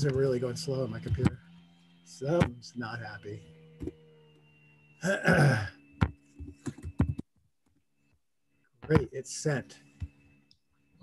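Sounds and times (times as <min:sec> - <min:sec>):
man clearing his throat: 0:05.0 - 0:05.7.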